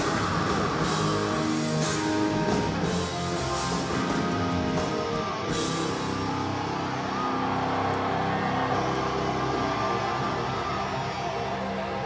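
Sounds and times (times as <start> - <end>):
distorted electric guitars: 0.0 - 12.0.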